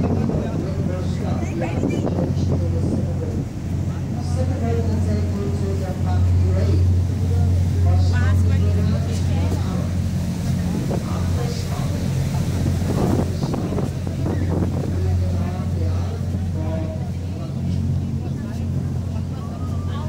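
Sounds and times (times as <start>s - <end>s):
boat engine droning: 0.0s - 20.0s
voices talking indistinctly: 0.0s - 20.0s.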